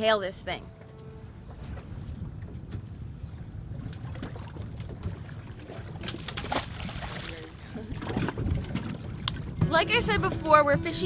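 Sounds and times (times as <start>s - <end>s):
wind: 0.0s - 11.0s
water slapping against boat hull: 1.5s - 11.0s.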